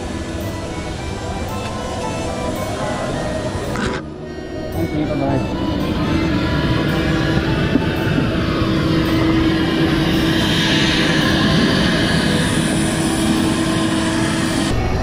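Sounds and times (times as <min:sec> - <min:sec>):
jet airliner running rumble: 0:00.0 - 0:15.0.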